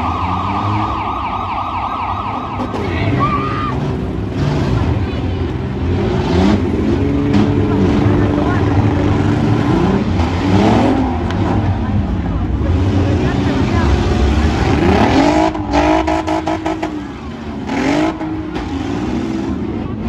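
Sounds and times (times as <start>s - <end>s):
minivan engines revving: 0.0s - 20.0s.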